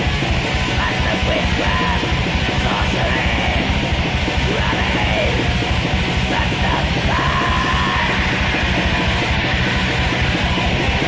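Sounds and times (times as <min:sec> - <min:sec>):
distorted guitar: 0:00.0 - 0:11.0
fast dense drumming: 0:00.0 - 0:11.0
harsh screamed vocal: 0:00.7 - 0:11.0.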